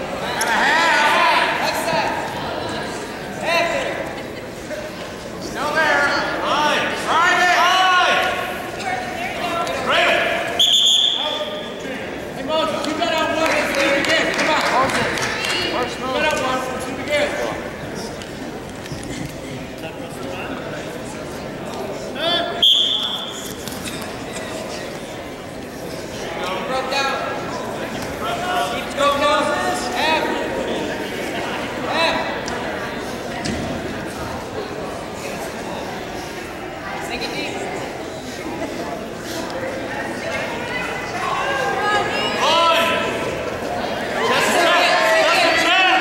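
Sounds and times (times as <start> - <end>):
voices calling out in echoing hall: 0.0 - 46.0
referee's whistle blast: 10.6 - 11.4, 22.6 - 23.4.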